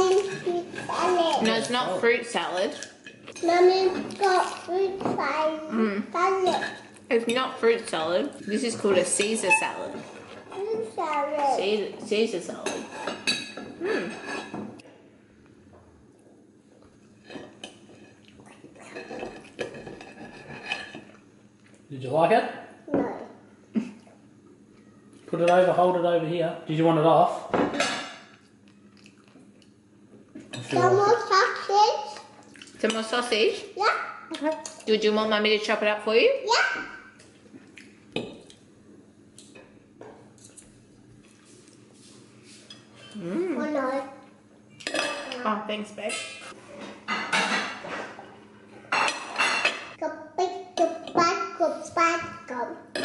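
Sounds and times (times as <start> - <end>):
cutlery scraping a plate: 8.4 - 10.6, 12.6 - 14.8, 18.8 - 21.2, 42.5 - 43.2, 44.7 - 45.4, 46.0 - 50.0
cutlery clinking on a plate: 44.8 - 45.4, 48.9 - 50.0.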